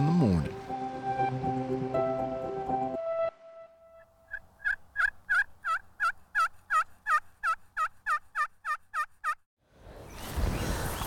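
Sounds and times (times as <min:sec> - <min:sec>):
turkey yelping: 0:04.3 - 0:09.4.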